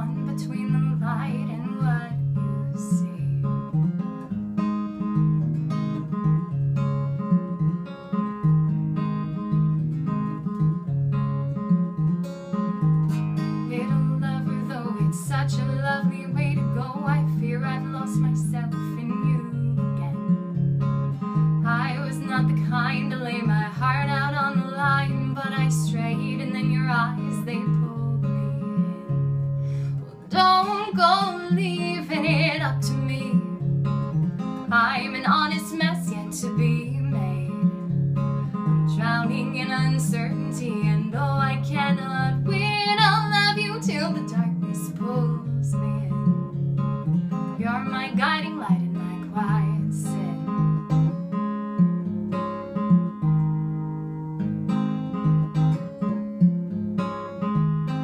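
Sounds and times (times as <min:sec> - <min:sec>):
woman singing folk song: 0:00.0 - 0:05.1, 0:13.3 - 0:53.2
acoustic guitar strumming: 0:00.0 - 0:58.0.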